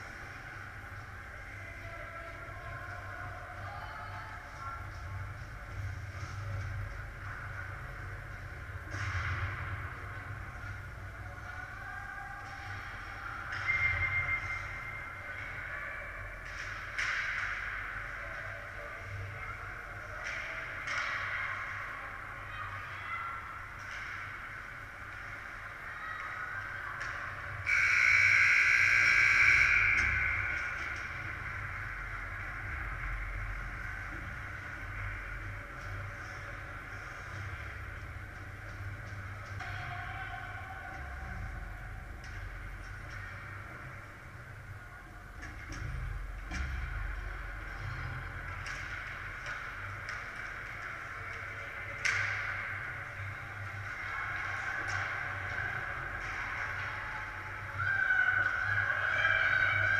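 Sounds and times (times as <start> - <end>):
shrill whistle: 27.6 - 30.5
sticks and puck clicking: 48.3 - 53.0.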